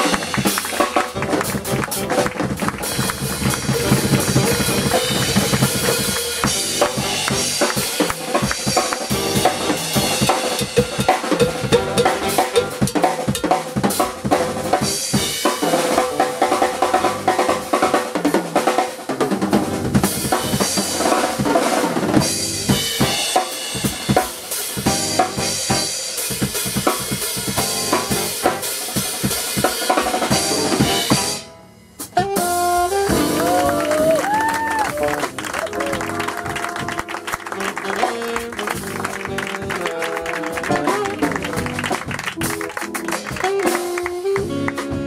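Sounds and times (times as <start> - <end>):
drum kit solo: 0.0 - 45.0.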